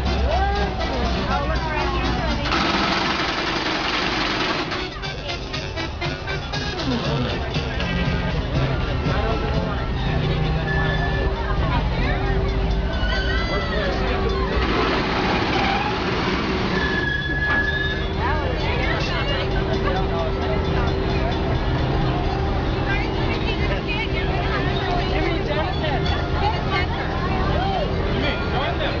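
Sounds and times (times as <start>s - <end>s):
crowd chatter: 0.0s - 29.0s
diesel locomotive idling: 0.0s - 29.0s.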